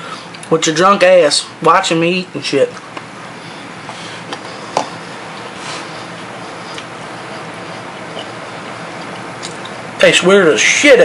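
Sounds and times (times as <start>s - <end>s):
person chewing cereal: 4.2s - 9.8s.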